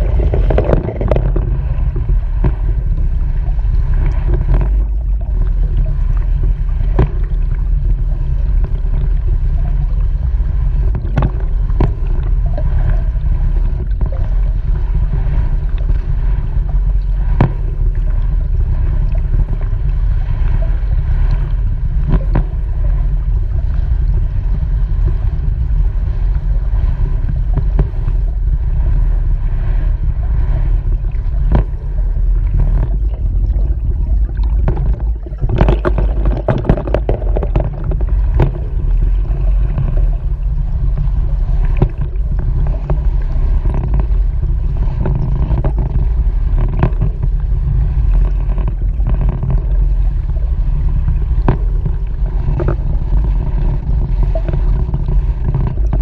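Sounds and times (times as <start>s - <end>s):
muffled underwater churning water: 0.0s - 56.0s.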